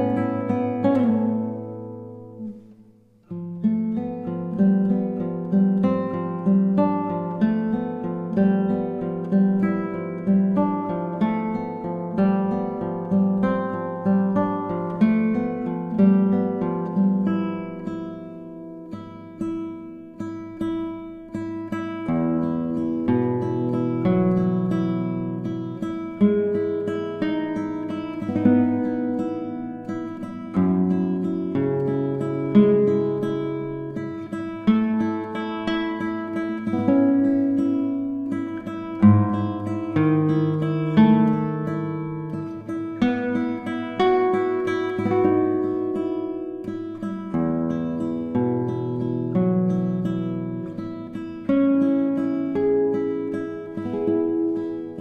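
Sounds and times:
solo acoustic guitar piece: 0.0 - 55.0.

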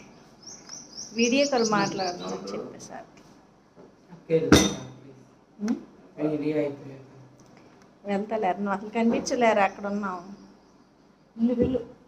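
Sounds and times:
small bird chirping: 0.0 - 2.6.

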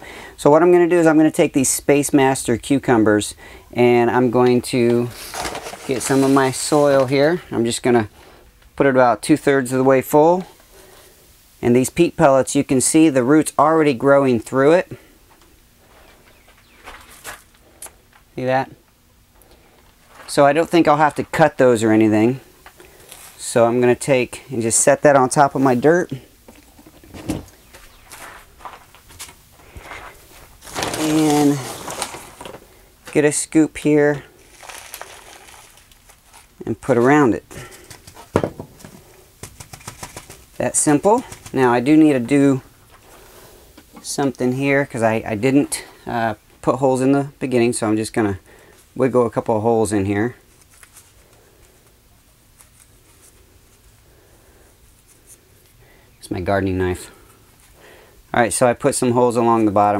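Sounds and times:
faint scuffs and rustles: 15.3 - 18.3, 19.6 - 21.5, 22.6 - 23.4, 26.9 - 33.2, 34.3 - 41.6, 50.4 - 54.0.

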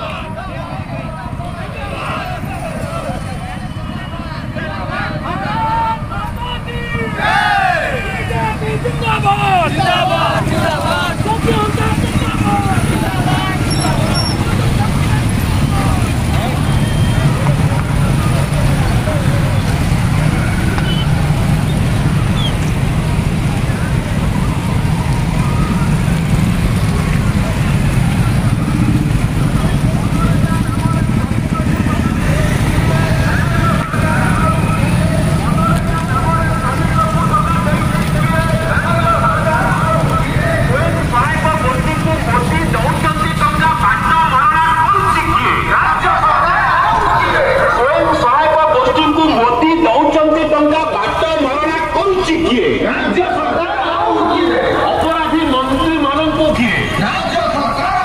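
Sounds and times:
many motorcycle engines rumbling: 0.0 - 58.0
voices shouting or chanting: 0.0 - 58.0.

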